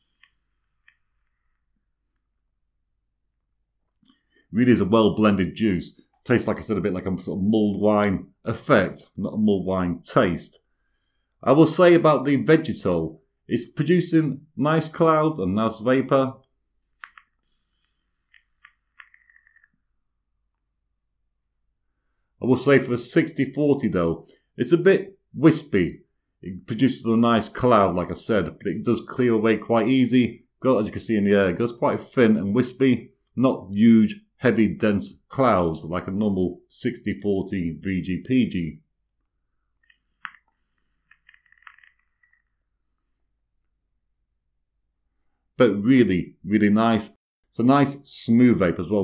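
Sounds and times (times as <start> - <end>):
vape device hissing and crackling: 16.8 - 19.7, 39.8 - 42.5.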